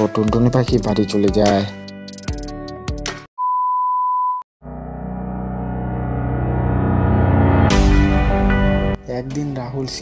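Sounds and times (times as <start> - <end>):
sustained music: 4.6 - 10.0.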